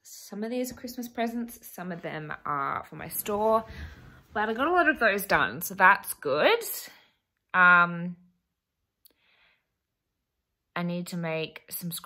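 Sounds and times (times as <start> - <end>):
soft breath: 3.6 - 4.3, 9.1 - 9.8.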